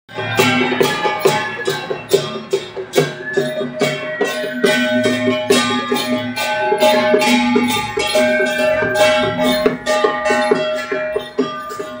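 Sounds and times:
drum and gongs beating: 0.1 - 12.0
sustained ringing tones: 0.3 - 12.0.

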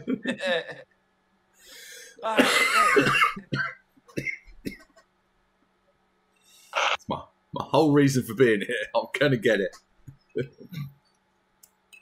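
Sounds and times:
person laughing hard: 0.0 - 0.8, 2.2 - 3.1.

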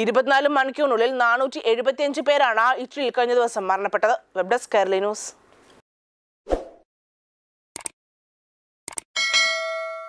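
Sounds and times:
notification bell ding: 9.2 - 10.0.

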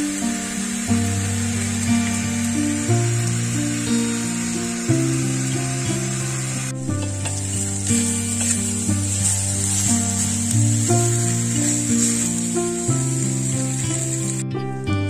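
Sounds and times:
food sizzling in pot: 0.0 - 14.5
slow held chords music: 0.0 - 15.0.

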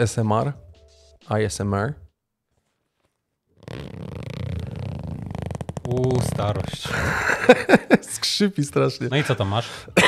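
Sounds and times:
zipper pulled open: 3.5 - 6.8.

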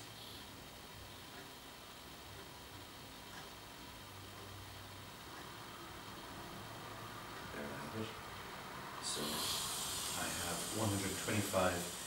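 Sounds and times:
air hissing from valve: 9.0 - 12.0.

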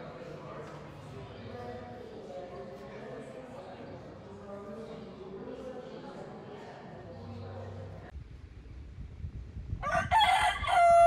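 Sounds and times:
rooster crowing: 9.8 - 11.0.

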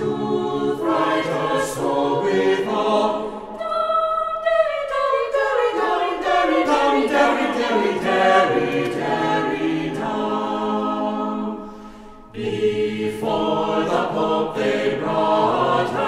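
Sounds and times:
choir singing unaccompanied: 0.0 - 16.0.

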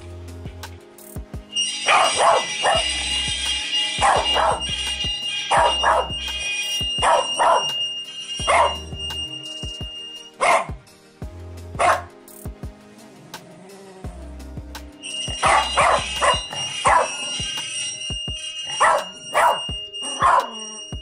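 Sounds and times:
steady high tone: 0.0 - 12.1, 14.1 - 21.0
background music: 0.0 - 21.0
dog barking: 1.9 - 2.9, 4.0 - 4.7, 5.5 - 6.2, 7.0 - 7.8, 8.4 - 8.8, 10.4 - 10.8, 11.8 - 12.1, 15.4 - 17.3, 18.8 - 20.8.

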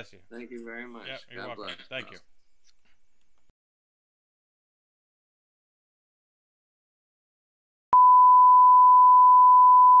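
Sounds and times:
sine-wave test tone: 7.9 - 10.0.

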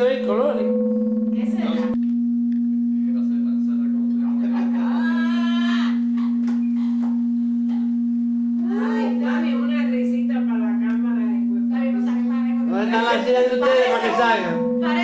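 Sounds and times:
loud electronic hum: 0.0 - 15.0.

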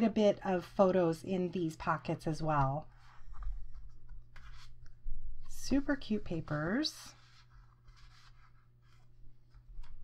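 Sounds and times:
faint paper rustling: 0.6 - 10.0.

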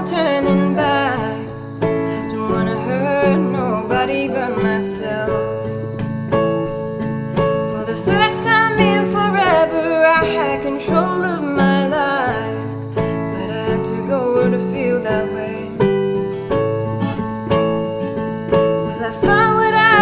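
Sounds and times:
woman singing: 0.0 - 5.8, 7.6 - 16.2, 18.8 - 20.0
acoustic guitar: 0.0 - 20.0
digital piano: 0.0 - 20.0.

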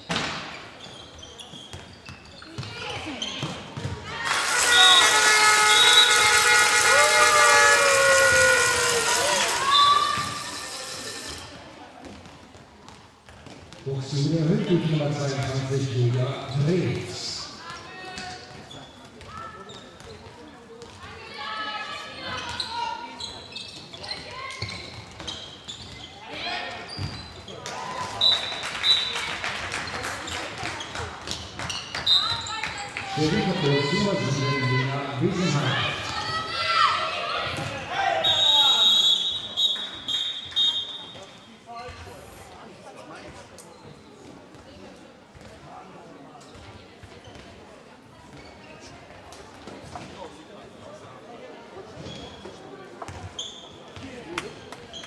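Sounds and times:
shoe squeaks on floor: 0.0 - 6.5, 9.6 - 11.6, 18.4 - 20.3, 22.2 - 27.6, 30.8 - 32.8, 43.6 - 44.3, 48.3 - 49.0, 51.9 - 55.0
spectators cheering and shouting: 4.0 - 11.4.

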